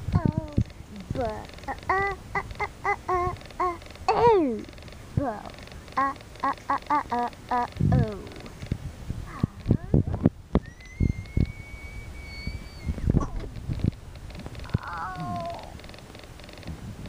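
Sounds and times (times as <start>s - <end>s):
toys knocking and clicking: 0.1s - 8.8s.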